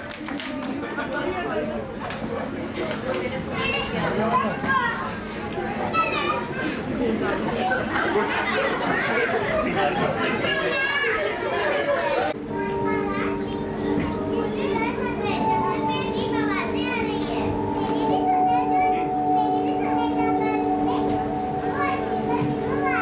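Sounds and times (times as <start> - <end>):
children's voices overlapping: 0.0 - 23.0
background music chords: 12.4 - 23.0.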